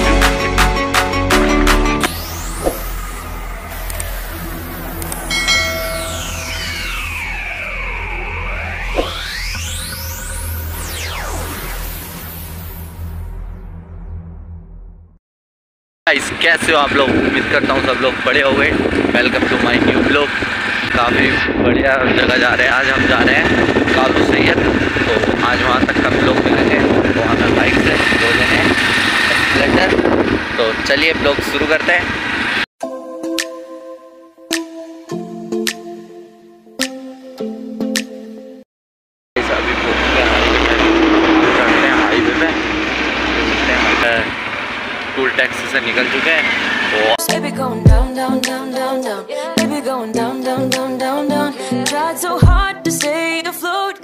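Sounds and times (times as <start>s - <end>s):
synth rising sweep: 1.6s - 15.2s, 23.6s - 32.7s, 39.4s - 47.2s
long falling sweep: 2.0s - 15.1s, 39.4s - 47.2s
low steady drone: 2.0s - 15.2s, 16.2s - 32.6s, 39.4s - 47.2s
bell-like chime: 5.2s - 7.2s
motorcycle running: 16.2s - 32.6s, 39.4s - 47.2s
wind buffeting microphone: 16.3s - 32.6s.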